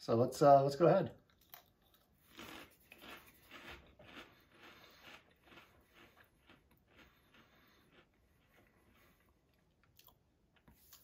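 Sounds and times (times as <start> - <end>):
chewing crunchy snack: 1.2 - 11.0.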